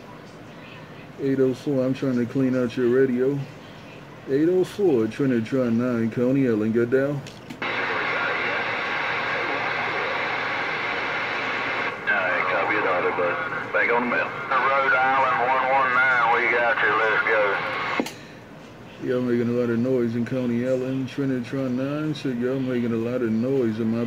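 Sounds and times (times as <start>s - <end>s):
radio click: 7.3s - 18.2s
faint garbled radio voice: 7.6s - 18.0s
radio static: 7.6s - 18.0s.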